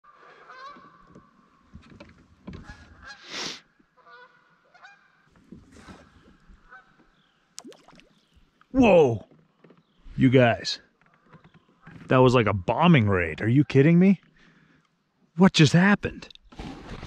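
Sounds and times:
geese honking: 0:04.0 - 0:05.2.

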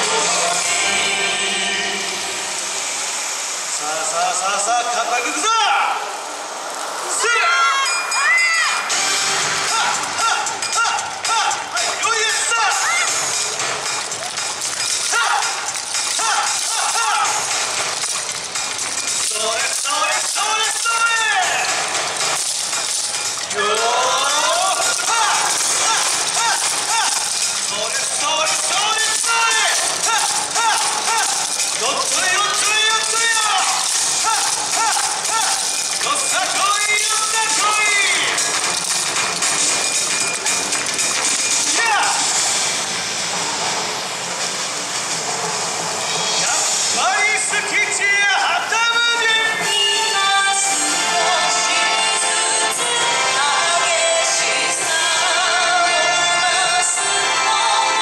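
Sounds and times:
dance music over speakers: 0:09.0 - 0:42.5
wooden clappers rattling: 0:09.7 - 0:42.6.

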